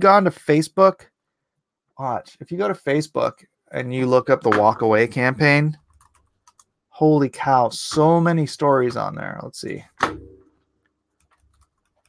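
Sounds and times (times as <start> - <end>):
faint keyboard ticks: 5.7 - 6.7, 11.1 - 12.0.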